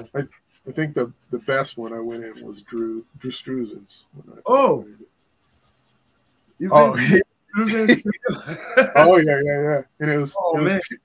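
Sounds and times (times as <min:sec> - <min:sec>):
man speaking: 0:00.0 - 0:05.0, 0:06.6 - 0:11.0
pen scratching on paper: 0:05.1 - 0:06.9.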